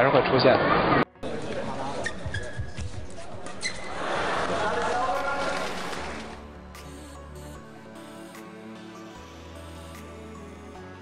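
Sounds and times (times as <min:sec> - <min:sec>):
background music with low note: 0:00.4 - 0:11.0
crowd noise: 0:00.8 - 0:06.5.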